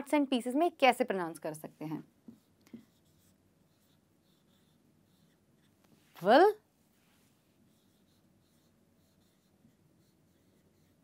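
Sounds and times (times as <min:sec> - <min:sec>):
marker writing on a whiteboard: 0:01.9 - 0:06.0, 0:07.7 - 0:11.0.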